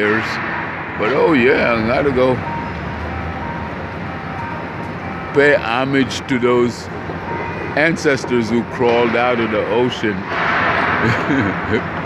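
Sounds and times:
faint high whine: 0.0s - 10.4s
traffic rumble: 0.0s - 12.0s.

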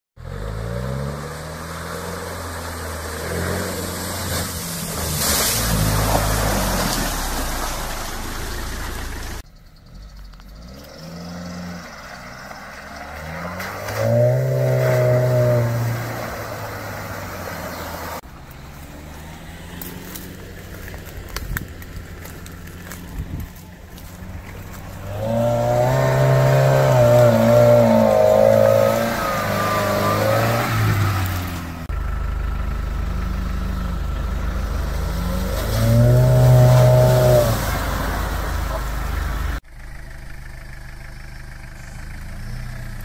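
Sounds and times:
suv engine revving: 0.2s - 43.0s.

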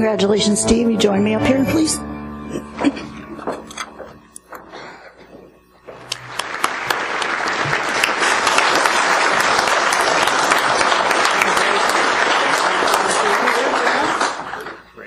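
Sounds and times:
audience applauding: 5.9s - 15.0s.

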